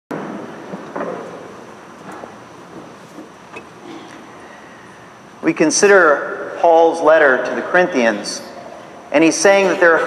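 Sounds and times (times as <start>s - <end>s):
noisy church room sound: 0.1s - 10.0s.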